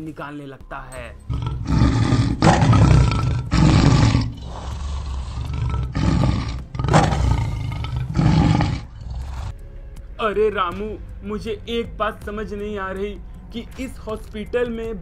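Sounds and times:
rough creature roars: 0:01.3 - 0:09.5.

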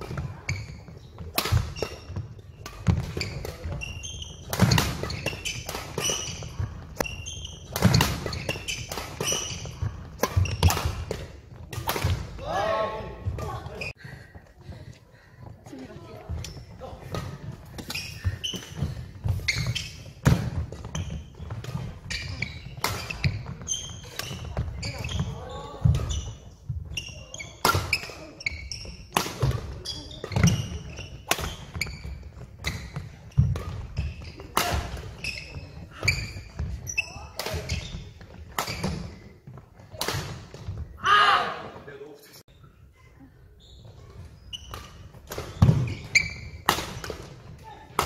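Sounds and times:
rackets striking shuttlecock: 0:01.2 - 0:12.4, 0:44.6 - 0:48.0.

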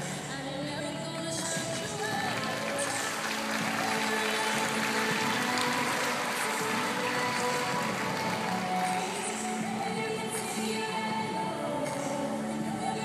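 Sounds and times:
music over arena sound system: 0:00.0 - 0:13.0.

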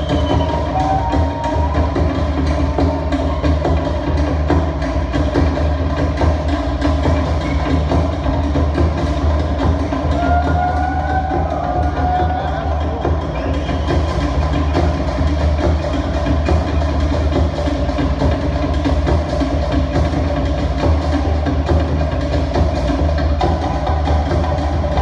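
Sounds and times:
fast drum music with deep bass: 0:00.0 - 0:25.0.

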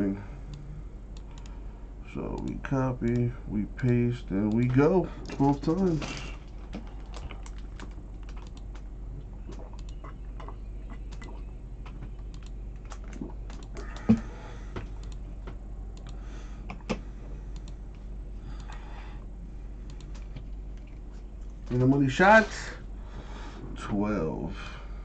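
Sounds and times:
computer mouse clicking: 0:01.2 - 0:01.6, 0:02.4 - 0:04.8, 0:06.7 - 0:08.8, 0:09.8 - 0:10.0, 0:12.2 - 0:14.2, 0:14.8 - 0:15.2, 0:16.0 - 0:17.8, 0:18.6 - 0:18.8, 0:19.9 - 0:20.9.

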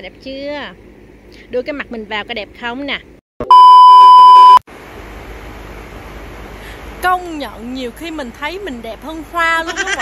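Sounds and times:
loud test-tone beep: 0:03.4 - 0:04.6.

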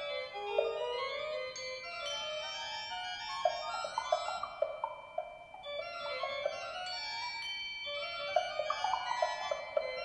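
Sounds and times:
organ sustained tones: 0:00.0 - 0:10.0.

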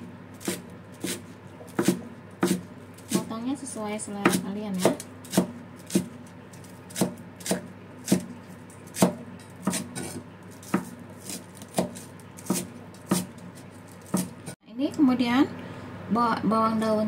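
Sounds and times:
cleaver chopping on wooden board: 0:00.4 - 0:03.3, 0:04.2 - 0:06.2, 0:06.9 - 0:08.3, 0:08.9 - 0:14.6.

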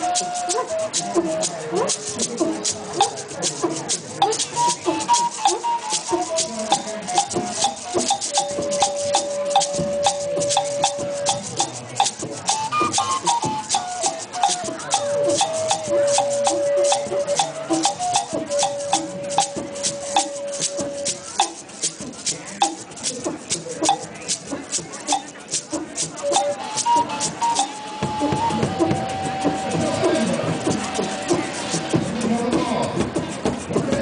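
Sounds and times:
shaker rhythm: 0:00.0 - 0:34.0.

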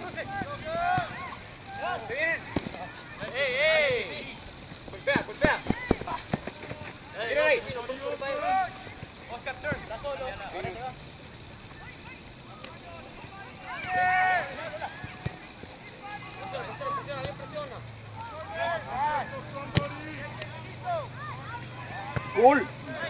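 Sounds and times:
open-air background noise: 0:00.0 - 0:23.0
players and spectators shouting: 0:00.0 - 0:23.0.

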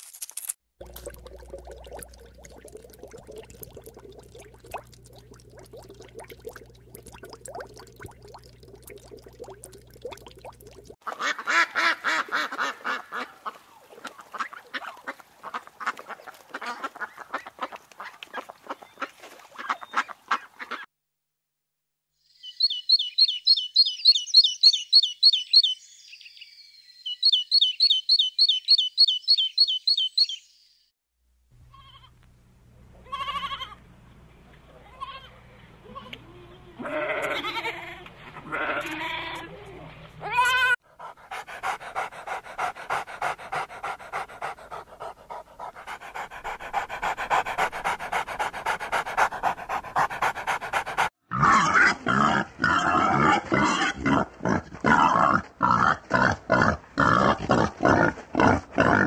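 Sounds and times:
bird high chirps: 0:22.4 - 0:30.8
dog panting: 0:40.9 - 0:51.2
wild boar grunting: 0:41.0 - 0:59.0.

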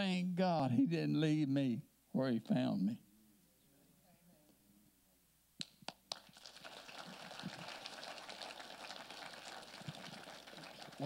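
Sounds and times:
people clapping: 0:05.6 - 0:11.0.

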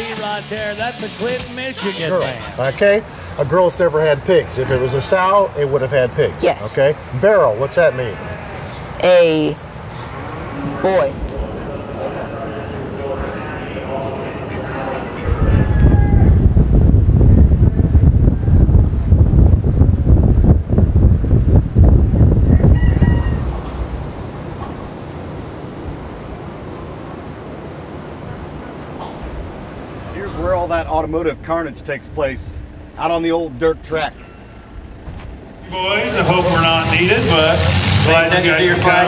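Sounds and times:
voices talking: 0:00.0 - 0:16.0, 0:22.8 - 0:39.0
loud low rumble: 0:10.6 - 0:33.8
chickens: 0:22.4 - 0:24.1
rooster crowing: 0:22.4 - 0:25.8.

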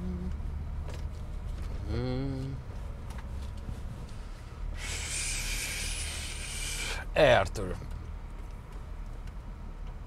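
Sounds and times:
car cabin road rumble: 0:00.0 - 0:10.0
loud steady hiss: 0:04.8 - 0:07.1.

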